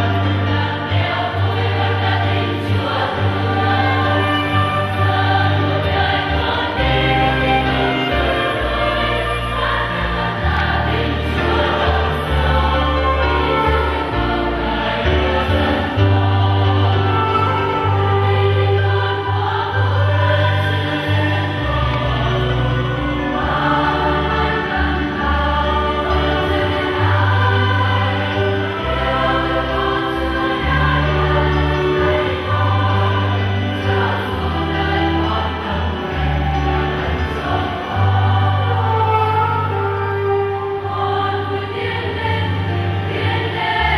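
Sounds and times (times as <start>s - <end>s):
choir singing a hymn: 0.0s - 43.9s
instrumental accompaniment: 0.0s - 43.9s.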